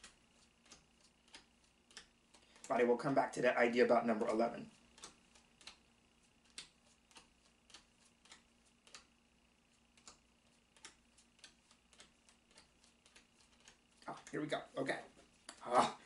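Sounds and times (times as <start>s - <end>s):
cards clicking: 0.0s - 2.7s, 4.2s - 14.4s, 15.3s - 15.6s.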